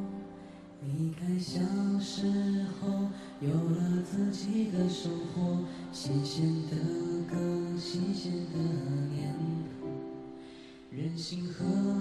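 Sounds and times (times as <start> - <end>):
young man singing: 0.0 - 12.0.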